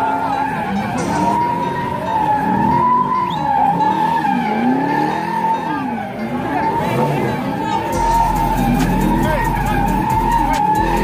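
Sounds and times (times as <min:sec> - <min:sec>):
car engine revving: 0:00.0 - 0:11.0
car tyres squealing: 0:00.0 - 0:11.0.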